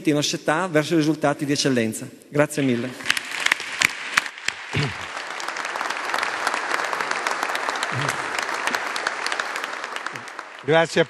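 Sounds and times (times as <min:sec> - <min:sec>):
audience applauding: 0:03.4 - 0:11.0.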